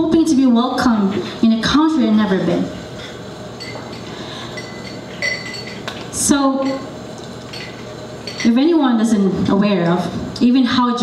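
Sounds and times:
room hum: 0:00.0 - 0:11.0
tableware clinking: 0:03.0 - 0:06.9, 0:07.5 - 0:08.6.

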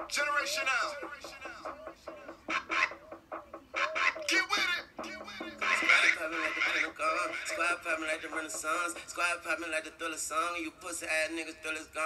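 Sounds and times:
hip-hop track with vocal sounds: 0:00.0 - 0:12.0.

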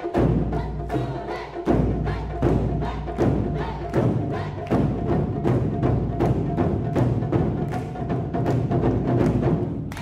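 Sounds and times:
taiko drums striking in unison: 0:00.0 - 0:10.0.

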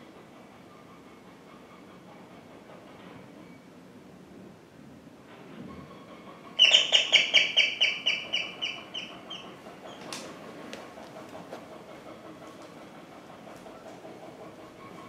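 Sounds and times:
bird calling shrill notes: 0:06.6 - 0:09.4.

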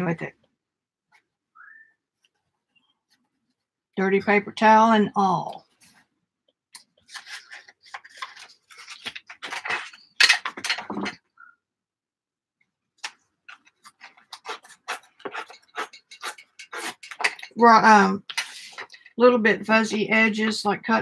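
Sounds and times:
paper rustling and scraping: 0:07.0 - 0:11.2.

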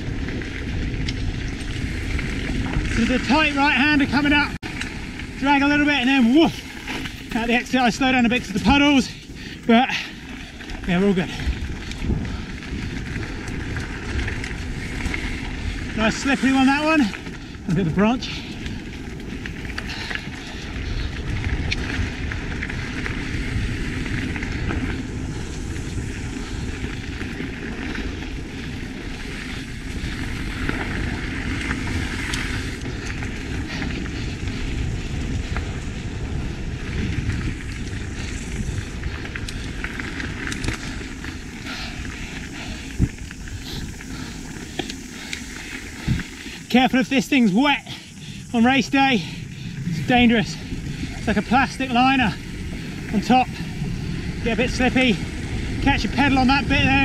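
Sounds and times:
tyres rolling on dirt: 0:00.0 - 0:57.0
wind on microphone: 0:00.0 - 0:57.0.

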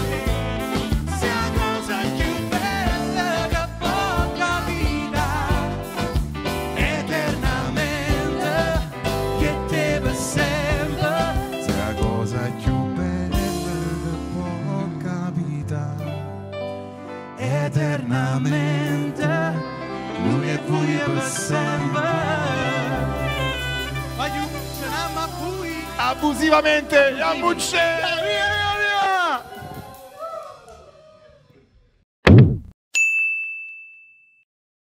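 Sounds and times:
male and female singers: 0:00.0 - 0:06.0, 0:06.8 - 0:15.9, 0:17.4 - 0:23.7
bass guitar: 0:00.0 - 0:16.8, 0:21.6 - 0:28.0
keyboard: 0:00.0 - 0:29.4
high bell-like ding: 0:32.9 - 0:34.4.

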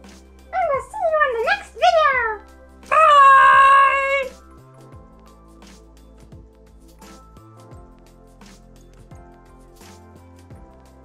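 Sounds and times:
cat meowing: 0:00.6 - 0:04.4.

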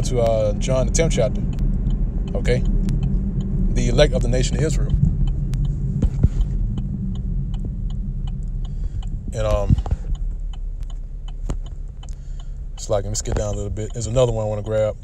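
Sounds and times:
low rumble and hum: 0:00.0 - 0:15.0
light taps: 0:04.1 - 0:15.0.

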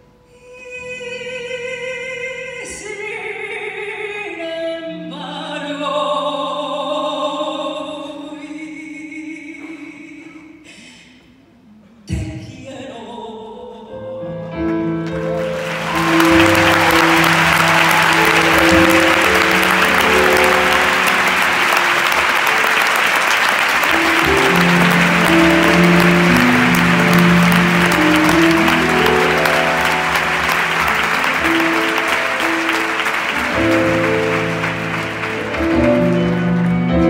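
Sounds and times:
audience applauding: 0:15.2 - 0:37.0
band holding sustained chords: 0:15.6 - 0:37.0.

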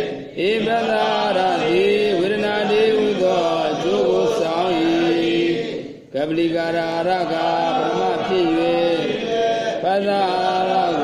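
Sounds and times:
person chanting: 0:00.0 - 0:11.0.

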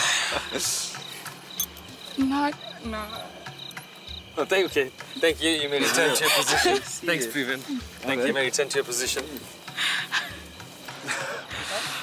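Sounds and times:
people laughing and gasping: 0:00.0 - 0:01.4, 0:05.7 - 0:07.0, 0:09.6 - 0:12.0
crickets chirping: 0:00.0 - 0:12.0.

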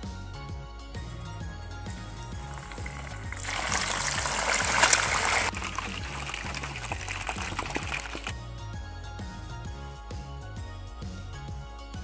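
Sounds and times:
background music: 0:00.0 - 0:12.0
pork sizzling in hot fat: 0:02.4 - 0:08.3.

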